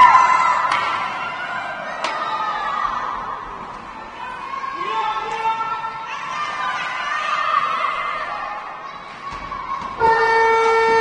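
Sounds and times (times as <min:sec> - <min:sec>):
arena horn steady tone: 0:10.0 - 0:11.0.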